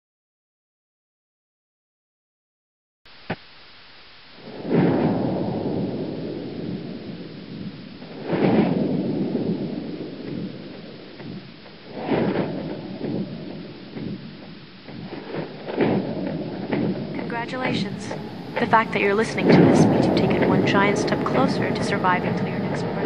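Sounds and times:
rain hiss: 3.1s - 22.2s
thunder cracks and rumble: 4.5s - 23.0s.

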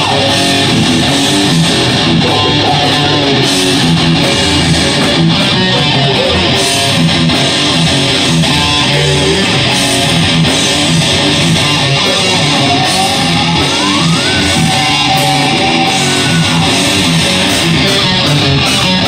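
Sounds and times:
bass guitar: 0.0s - 19.0s
drums: 0.0s - 19.0s
electric guitar: 0.0s - 19.0s.

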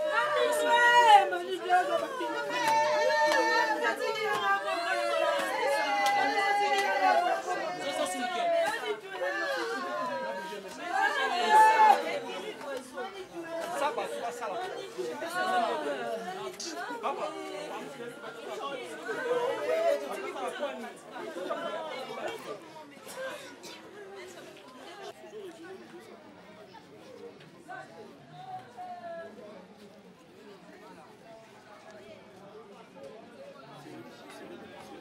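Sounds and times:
overlapping chatter of people: 0.0s - 35.0s.

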